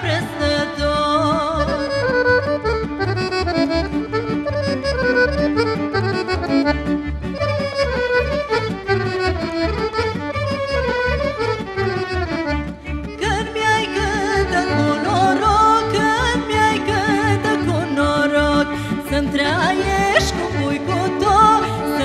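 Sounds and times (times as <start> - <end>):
accordion fast melody: 0.0 - 22.0
double bass and rhythm section: 0.0 - 22.0
violins: 0.0 - 22.0.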